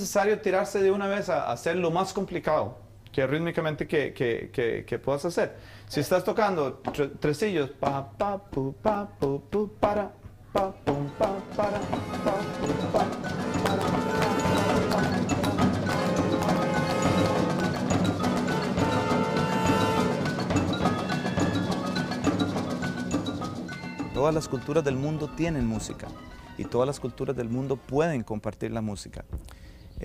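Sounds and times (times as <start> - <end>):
marimba notes: 10.9 - 28.0
orchestral music with percussion: 10.9 - 28.0.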